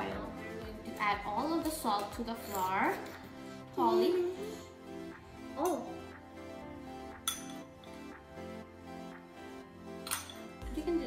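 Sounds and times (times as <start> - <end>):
background music: 0.0 - 11.0
metal spoon clinking on glass bowl: 7.2 - 7.7, 10.0 - 10.5.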